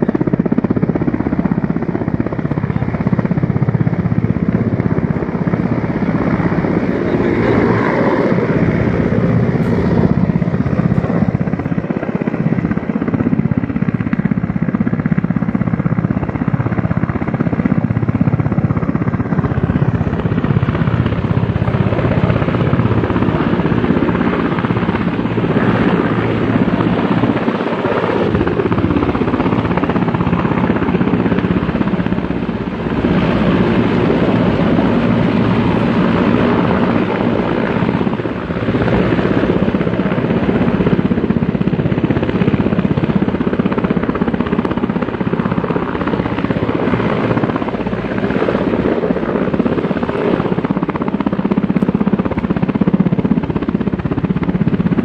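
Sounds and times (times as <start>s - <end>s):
helicopter rotors and engine: 0.0s - 55.0s.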